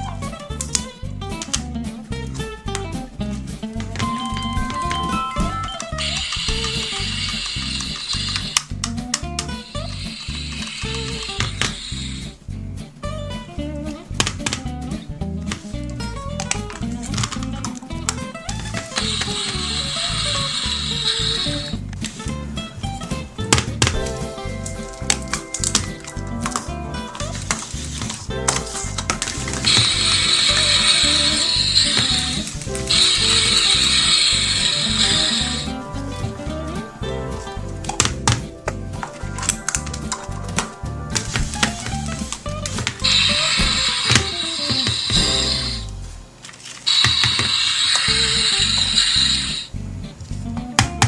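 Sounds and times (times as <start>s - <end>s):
background music with beat: 0.0s - 46.4s, 49.7s - 51.0s
electronic sizzling hiss: 5.2s - 8.8s, 9.4s - 12.4s, 18.6s - 22.2s, 24.0s - 37.6s, 40.7s - 49.8s
plastic capsules clicking: 5.7s - 11.9s.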